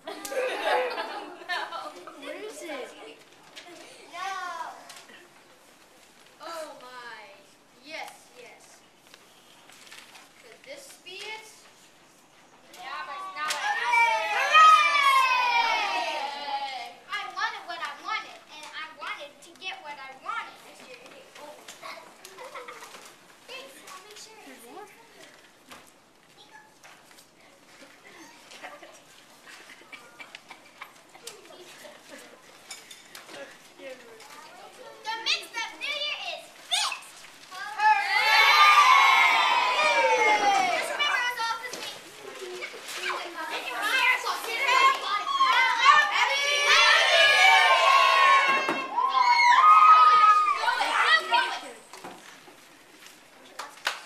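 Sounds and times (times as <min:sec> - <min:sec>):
children talking: 0:00.0 - 0:05.7, 0:10.4 - 0:54.0
children shouting together: 0:13.2 - 0:17.0, 0:37.6 - 0:41.3, 0:43.8 - 0:51.8.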